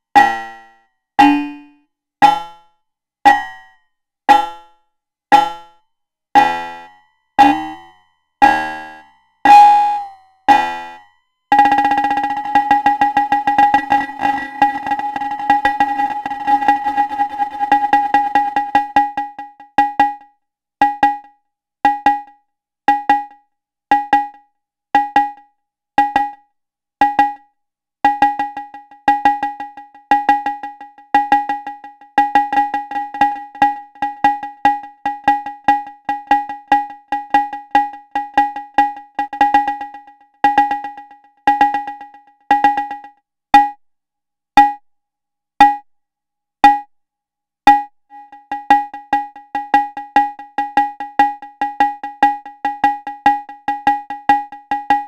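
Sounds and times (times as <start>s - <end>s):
cowbell-like drum hits with echoes: 5.4s - 5.8s, 6.4s - 21.3s, 21.9s - 24.4s, 25.0s - 25.4s, 26.0s - 26.4s, 27.0s - 27.5s, 28.1s - 43.8s, 44.6s - 44.8s, 45.6s - 45.9s, 46.6s - 46.9s, 47.7s - 55.0s.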